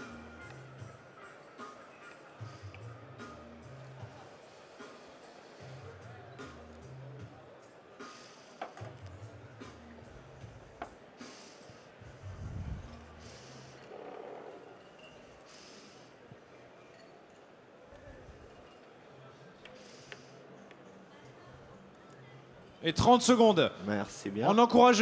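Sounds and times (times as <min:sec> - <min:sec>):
faint music with bass line: 0:00.0 - 0:16.8.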